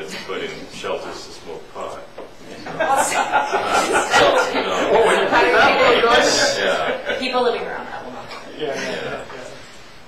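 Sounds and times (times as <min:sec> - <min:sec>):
group of people laughing: 0:02.6 - 0:09.6.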